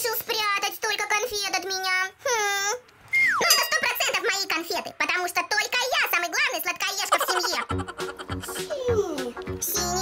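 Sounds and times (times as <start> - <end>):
falling whistle-like tone: 3.1 - 3.6
child's wordless vocal sounds: 8.5 - 10.0.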